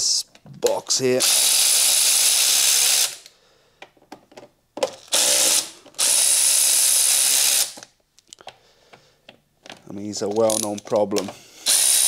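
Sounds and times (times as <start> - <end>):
cordless power tool spinning: 1.2 - 3.3, 5.0 - 7.8, 11.6 - 12.0.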